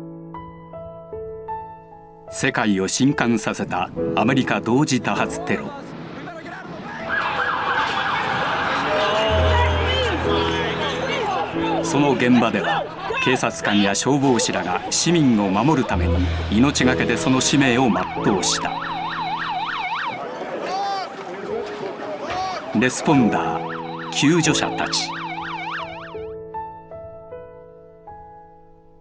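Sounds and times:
yelp siren: 0:07.0 - 0:10.6, 0:17.7 - 0:21.1, 0:23.0 - 0:26.2.

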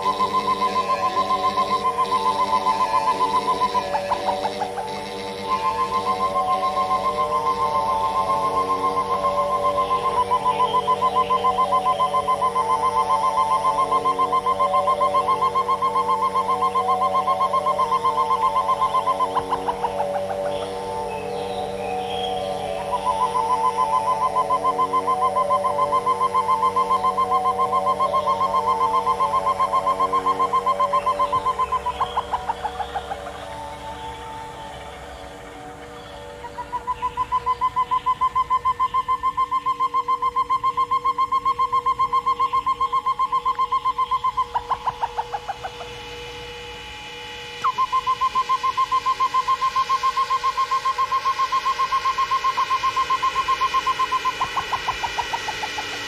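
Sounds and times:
held lower tones: 0:00.0 - 0:56.0
rapidly pulsing high tone: 0:00.0 - 0:56.0.

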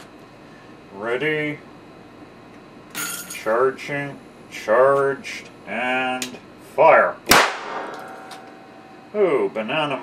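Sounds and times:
sharp electrical bang: 0:07.3 - 0:08.5.

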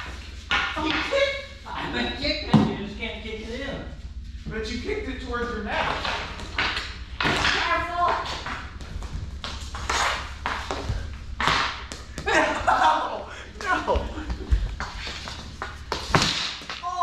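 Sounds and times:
hockey sticks and ball clacking: 0:00.0 - 0:01.4, 0:05.8 - 0:12.9, 0:13.5 - 0:17.0
scuffling feet: 0:05.4 - 0:17.0
voices calling out: 0:10.3 - 0:14.8.

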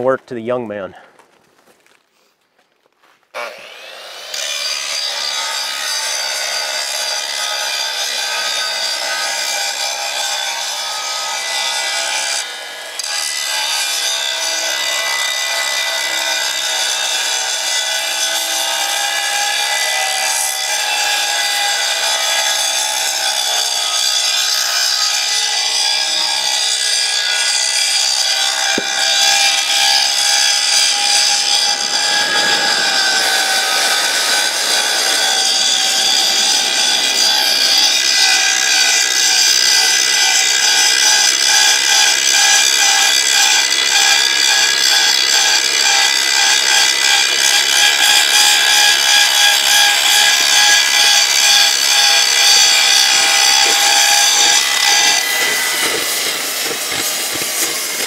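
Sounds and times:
angle grinder grinding steel: 0:03.4 - 0:58.0.

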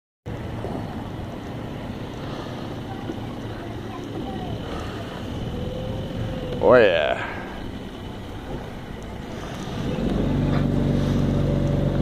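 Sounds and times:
small engine running: 0:02.0 - 0:12.0.

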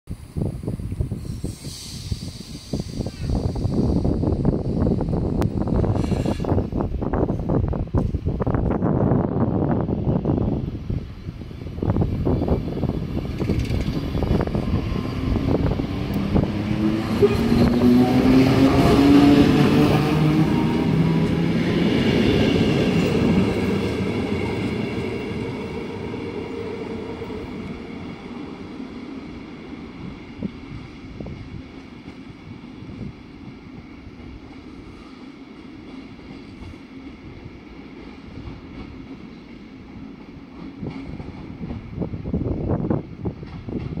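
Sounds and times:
wheels rumbling: 0:12.0 - 0:27.9.

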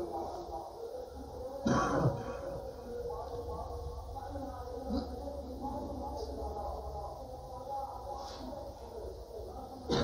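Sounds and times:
person coughing: 0:01.6 - 0:02.4.

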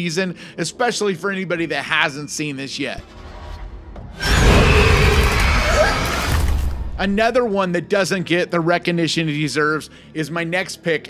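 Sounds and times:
harsh scream effect with rumble: 0:03.0 - 0:07.0.

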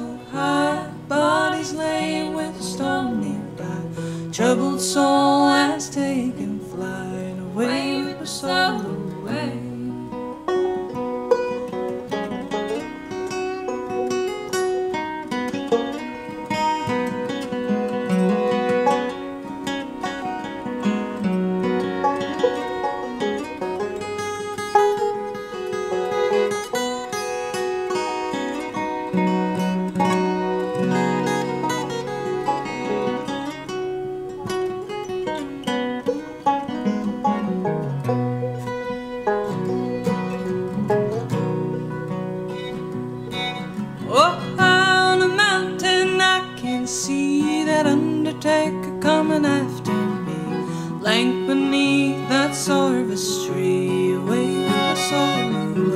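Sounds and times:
acoustic guitar: 0:00.0 - 0:55.9
banjo: 0:00.0 - 0:55.9
fiddle: 0:00.0 - 0:55.9.

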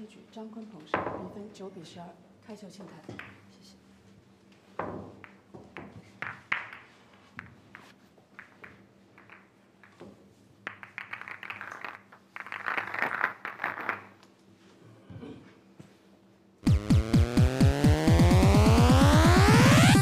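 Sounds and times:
pool balls clicking: 0:04.8 - 0:14.2.

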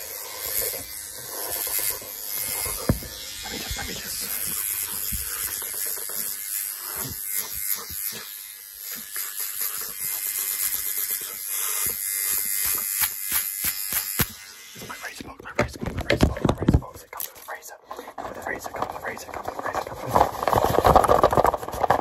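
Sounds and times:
rough rubbing bursts: 0:08.9 - 0:22.0
gloved hands scratching and tapping: 0:15.1 - 0:22.0.

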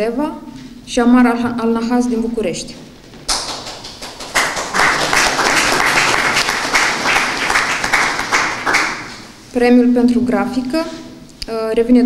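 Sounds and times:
audience applauding: 0:03.0 - 0:09.4.

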